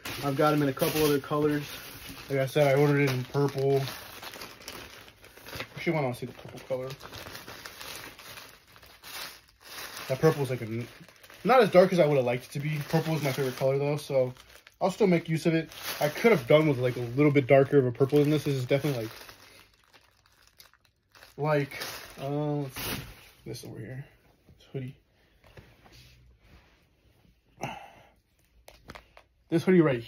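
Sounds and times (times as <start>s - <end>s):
plastic bag crinkling: 0.0s - 23.3s.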